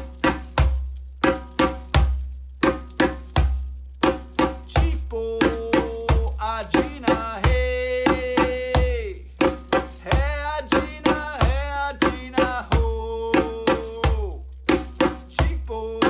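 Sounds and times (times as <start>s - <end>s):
man singing long notes: 4.7s - 9.2s, 10.1s - 14.4s, 15.4s - 16.0s.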